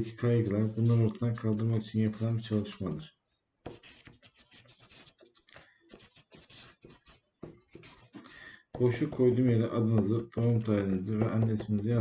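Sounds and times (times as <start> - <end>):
marker pen scratching on paper: 0.0 - 3.0, 3.7 - 12.0.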